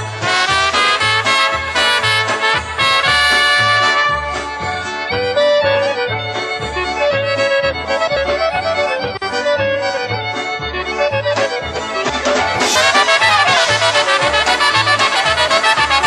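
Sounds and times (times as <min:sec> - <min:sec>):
accordion playing polka melody: 0:00.0 - 0:16.0
oom-pah bass beat: 0:00.0 - 0:16.0.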